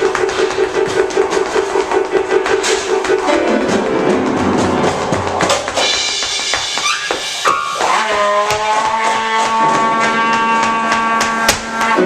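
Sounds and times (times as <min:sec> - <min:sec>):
drum and percussion strikes: 0:01.1 - 0:07.8, 0:09.3 - 0:12.0.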